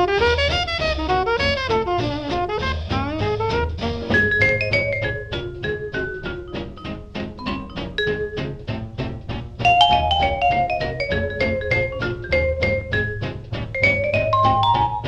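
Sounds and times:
drums: 0.0s - 15.0s
vibraphone solo: 4.2s - 6.4s, 7.4s - 8.5s, 9.6s - 13.2s, 13.8s - 15.0s.

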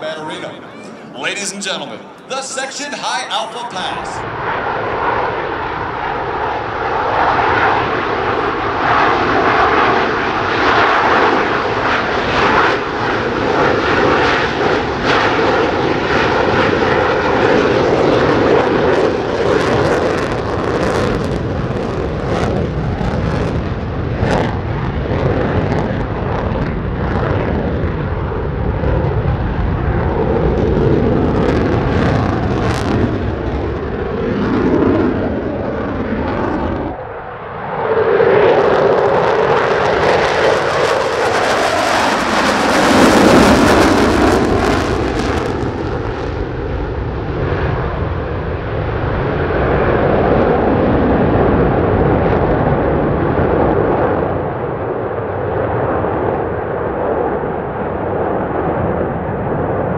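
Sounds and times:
jet engine roar: 0.0s - 59.9s.

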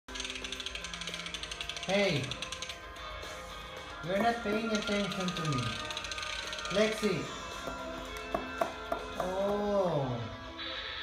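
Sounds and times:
rapid even ticking: 0.1s - 3.2s.

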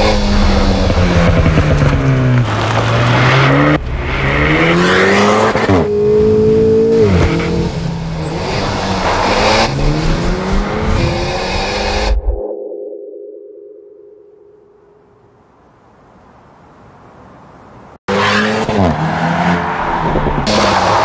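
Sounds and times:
car engine accelerating: 0.0s - 12.2s.

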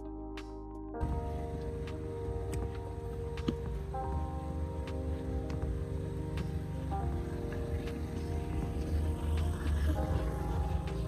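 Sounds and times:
music with heavy bass line: 0.0s - 11.0s.

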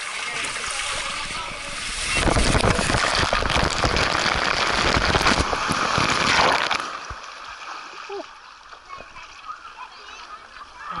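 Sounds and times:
water rushing down slide channel: 0.0s - 11.0s
water splashing: 0.0s - 11.0s.

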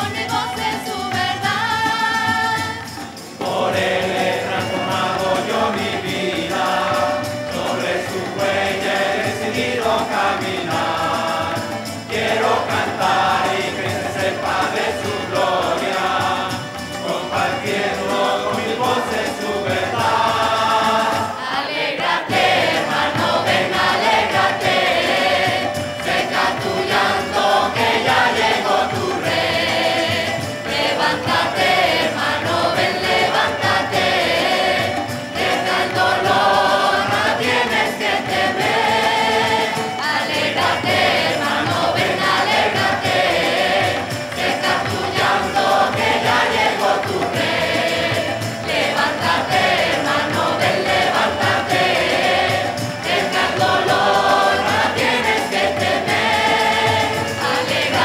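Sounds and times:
choir singing: 0.0s - 58.0s
instrumental accompaniment: 0.0s - 58.0s
steady percussion beat: 0.0s - 58.0s.

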